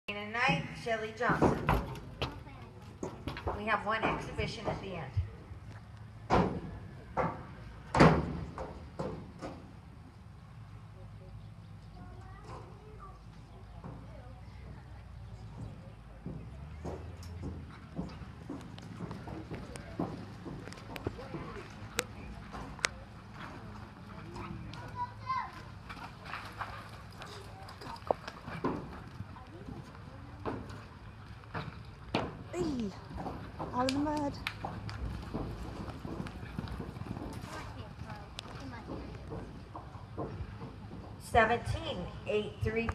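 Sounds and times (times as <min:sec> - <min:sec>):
people talking: 0:00.1 - 0:01.7, 0:03.6 - 0:05.3, 0:32.6 - 0:33.0, 0:33.8 - 0:34.4, 0:41.2 - 0:42.9
horse hoofbeats on dirt: 0:00.1 - 0:42.9.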